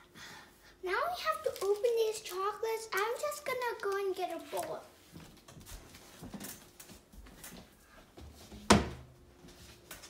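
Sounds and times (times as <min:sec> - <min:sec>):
soft footsteps on floor: 0:05.0 - 0:10.0.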